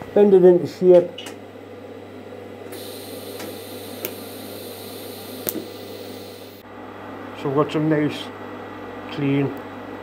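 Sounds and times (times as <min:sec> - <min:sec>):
low electrical hum: 0:00.0 - 0:10.0
welding torch hissing: 0:02.7 - 0:06.6.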